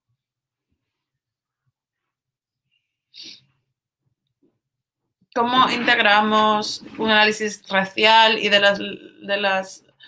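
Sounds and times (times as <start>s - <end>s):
sharp burst of breath: 3.1s - 3.5s.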